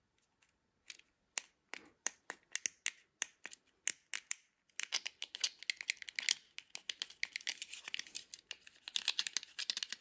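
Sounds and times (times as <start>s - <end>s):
plastic fidget pad clicking: 0.9s - 10.0s.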